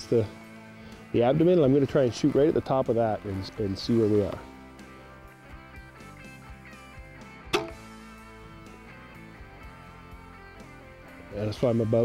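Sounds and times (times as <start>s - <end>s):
soft guitar music: 0.0s - 12.0s
crossbow firing: 7.5s - 7.9s.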